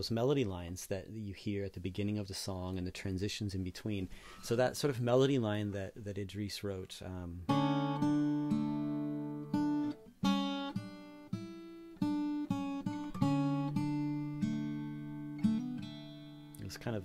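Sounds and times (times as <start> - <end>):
fingerpicked acoustic guitar: 7.4 - 17.0.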